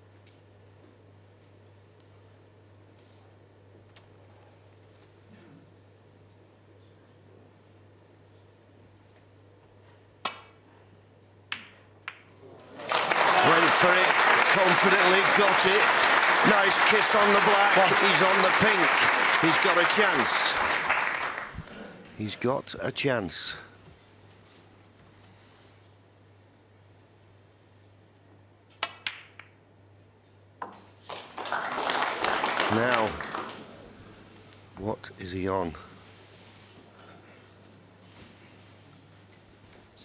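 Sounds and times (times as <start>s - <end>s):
faint low arena hum: 0.0s - 40.0s
audience applause: 12.6s - 22.0s, 31.0s - 34.0s
snooker balls clicking: 28.7s - 29.6s.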